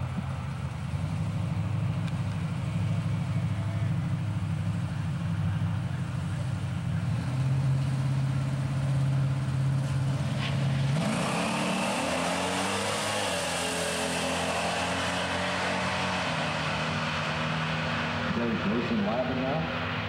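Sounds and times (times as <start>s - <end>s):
drag racing engines revving: 1.2s - 20.0s.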